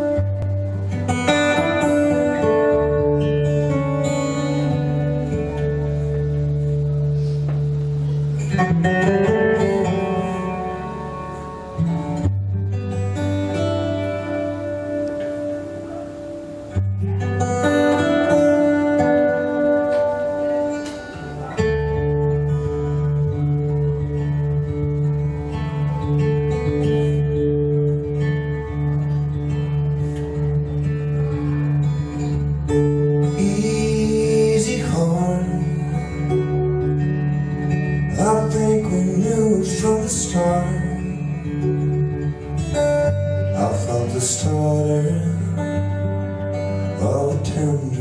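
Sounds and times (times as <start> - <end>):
fingerpicked acoustic guitar: 0.0 - 48.0.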